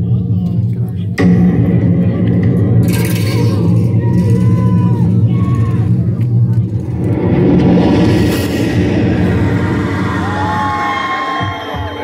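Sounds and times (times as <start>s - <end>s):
crowd shouting and cheering: 1.2s - 12.0s
loud club music: 9.0s - 12.0s.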